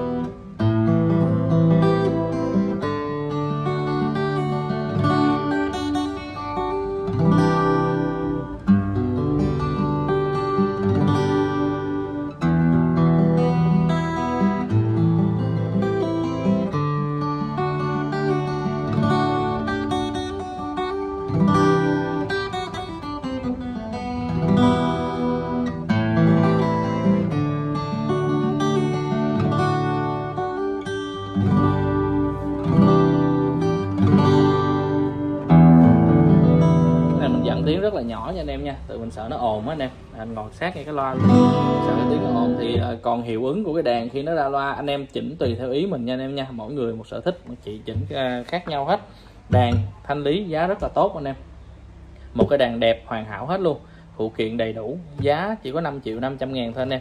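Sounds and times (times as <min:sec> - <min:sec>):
amplified guitar arpeggios: 0:00.0 - 0:39.6, 0:40.8 - 0:44.1.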